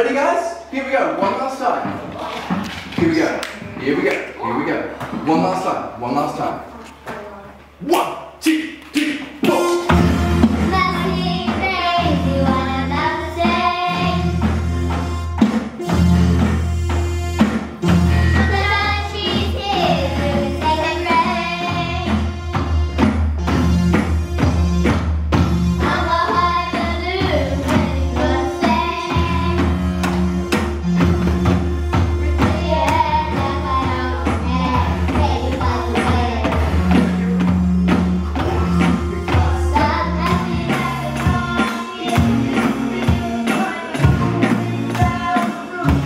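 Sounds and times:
drum kit beat: 7.9 - 46.0
keyboard accompaniment: 9.2 - 46.0
guitar: 9.4 - 46.0
girls singing together: 10.7 - 14.5, 18.3 - 22.2, 25.8 - 29.8, 32.2 - 36.8, 39.3 - 46.0.

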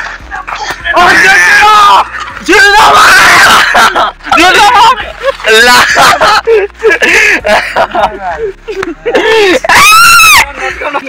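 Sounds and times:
man yelling: 0.4 - 6.4, 9.3 - 11.0.

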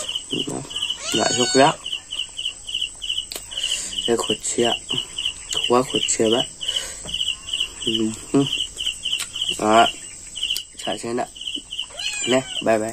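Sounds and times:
insect chirping: 0.0 - 12.9.

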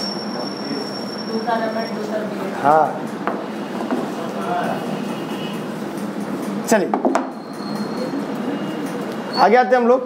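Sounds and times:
high-pitched whine: 0.0 - 6.2.

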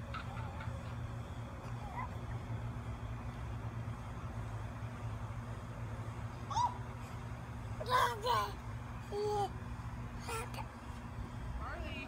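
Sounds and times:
steady low background rumble: 0.0 - 12.0.

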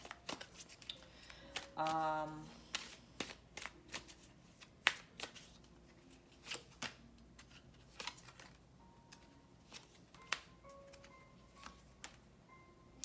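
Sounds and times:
cards shuffled by hand: 0.0 - 12.2.

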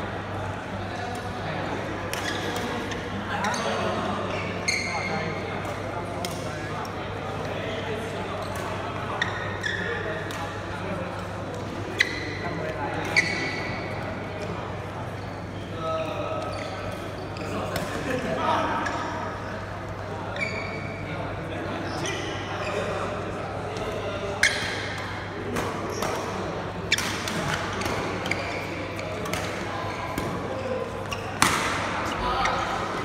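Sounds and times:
people chattering: 0.0 - 33.0
court shoes squealing on floor: 2.2 - 5.3, 9.2 - 10.0, 11.9 - 13.9, 16.4 - 17.7, 20.3 - 21.1, 21.8 - 23.0, 24.4 - 25.0, 25.8 - 33.0
racket hitting shuttlecock: 31.4 - 32.0.

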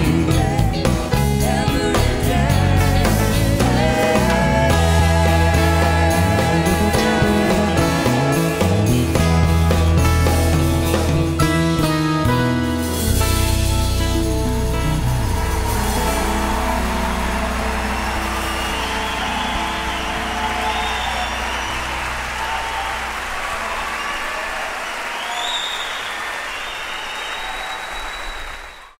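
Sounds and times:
band final chord: 3.4 - 23.3
audience applauding and cheering: 14.3 - 29.0
high whistle: 15.2 - 29.0.

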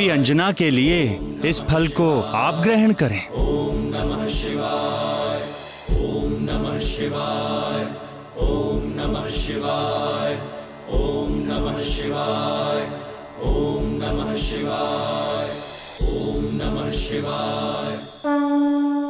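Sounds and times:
chanted mantra: 0.0 - 18.3
low drum beats: 0.9 - 1.7
sustained drone: 1.2 - 18.1.

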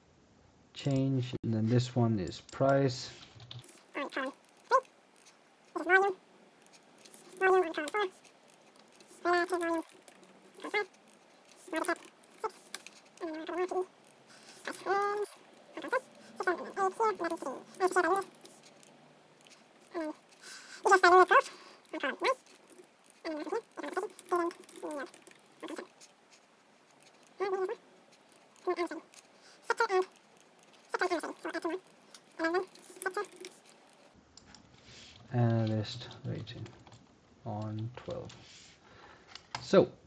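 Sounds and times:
high-pitched animal call: 3.9 - 4.9, 5.8 - 6.2, 7.1 - 8.2, 8.9 - 26.1, 27.1 - 27.8, 28.6 - 34.0.

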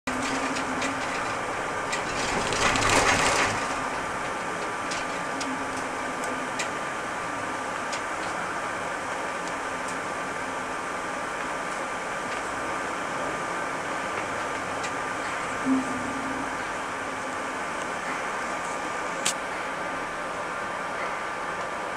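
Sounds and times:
light rattles and clicks: 0.1 - 7.0, 7.6 - 10.0
bus engine and road noise: 0.1 - 21.9
faint steady whine: 0.1 - 21.9.

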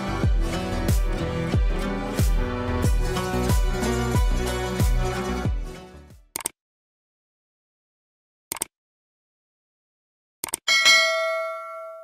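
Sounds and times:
quick clicks: 6.3 - 6.6, 8.5 - 8.7, 10.4 - 10.6
notification bell ding: 10.7 - 12.0.

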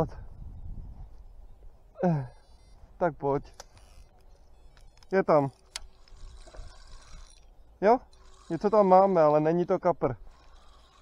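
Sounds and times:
wind rumble on microphone: 0.0 - 1.9
fishing reel whirring: 2.3 - 2.8, 3.5 - 9.6, 10.2 - 11.0.

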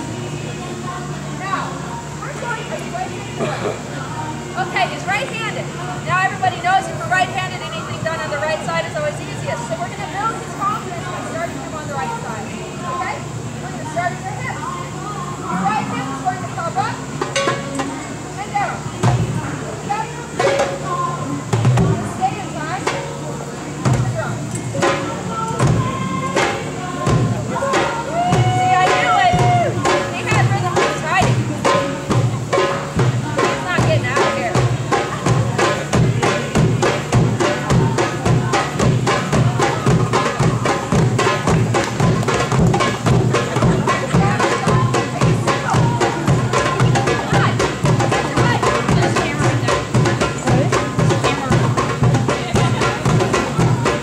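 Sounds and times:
hand drum strokes: 0.0 - 54.0
voices: 0.0 - 54.0.

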